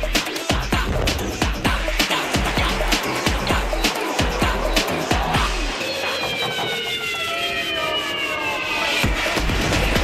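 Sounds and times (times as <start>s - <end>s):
falling whistle-like sweep: 2.2s - 9.4s.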